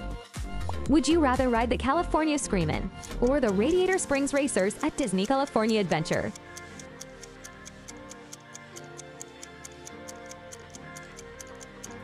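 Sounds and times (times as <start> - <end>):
soft background music: 0.0 - 12.0
countdown timer ticking: 2.8 - 12.0.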